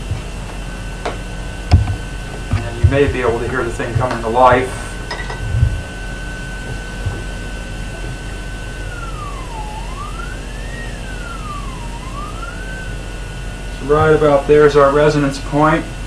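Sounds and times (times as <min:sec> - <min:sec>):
high electronic whine: 0:00.0 - 0:16.0
low hum: 0:00.0 - 0:16.0
low bump: 0:05.2 - 0:08.3.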